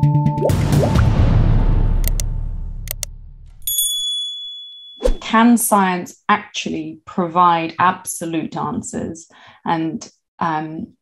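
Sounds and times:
intro music: 0:00.1 - 0:03.4
click: 0:02.0 - 0:03.1
notification bell ding: 0:03.6 - 0:05.2.

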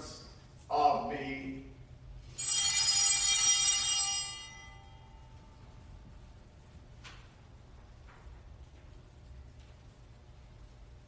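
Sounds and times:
small bells ringing: 0:02.3 - 0:05.6.

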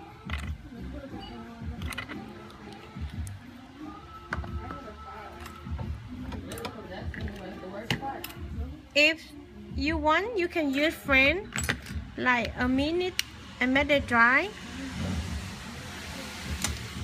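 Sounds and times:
music: 0:00.0 - 0:17.0.

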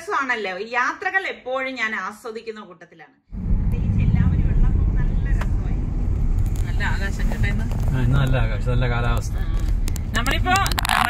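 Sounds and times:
road and wind noise in car: 0:03.3 - 0:11.0.

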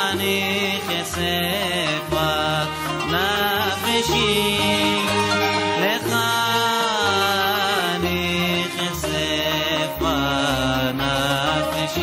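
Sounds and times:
instrumental accompaniment: 0:00.0 - 0:12.0
person singing: 0:00.0 - 0:12.0
bass line: 0:00.4 - 0:12.0.

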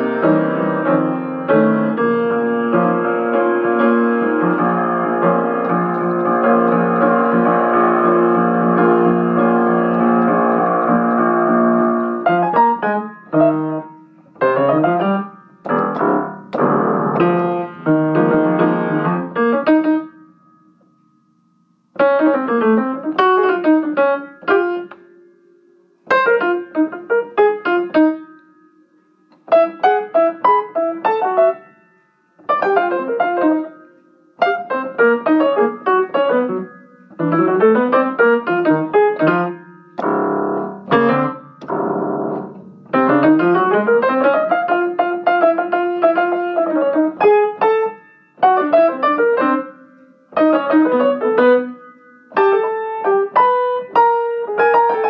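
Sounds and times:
jazz piano playing: 0:00.0 - 0:55.0.

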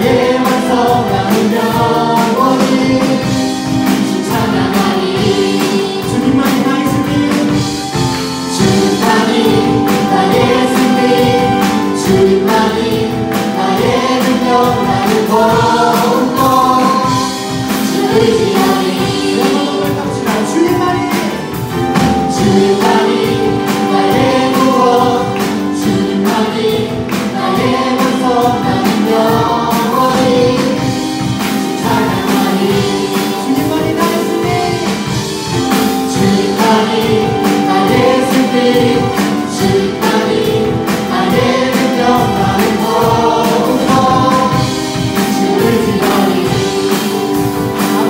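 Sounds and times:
group singing worship song: 0:00.0 - 0:48.0
live band playing: 0:00.0 - 0:48.0
steady drum beat: 0:00.0 - 0:48.0.

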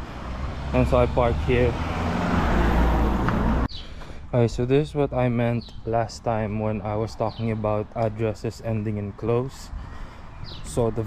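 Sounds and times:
car driving past: 0:00.0 - 0:03.7.

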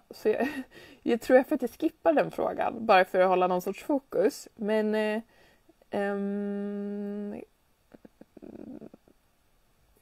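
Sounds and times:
short breath: 0:00.6 - 0:01.0, 0:05.3 - 0:05.8.

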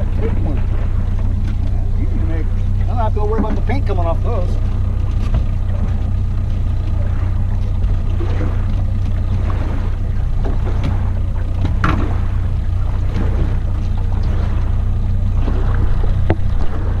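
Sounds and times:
outboard motor running: 0:00.0 - 0:17.0
knocks of gear in boat: 0:00.2 - 0:17.0.

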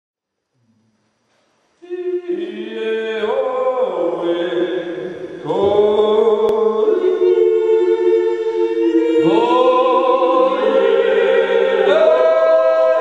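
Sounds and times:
vocal group yodelling in harmony: 0:01.8 - 0:13.0.

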